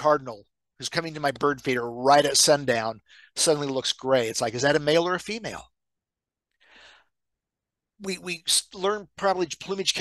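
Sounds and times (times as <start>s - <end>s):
man breathing: 6.5s - 7.3s.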